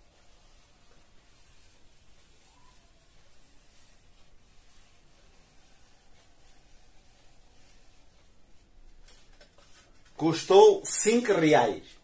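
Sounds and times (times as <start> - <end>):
marker scratching: 0.0 - 12.0.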